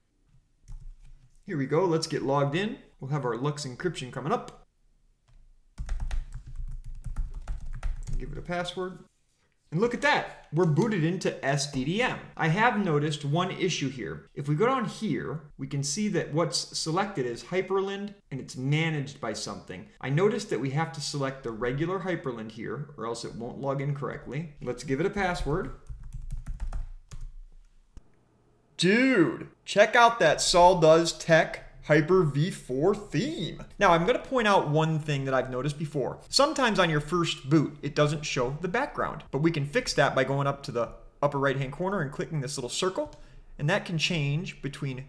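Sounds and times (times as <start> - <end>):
rapid keyboard typing: 0.7 - 1.2, 5.8 - 8.8, 24.8 - 27.3.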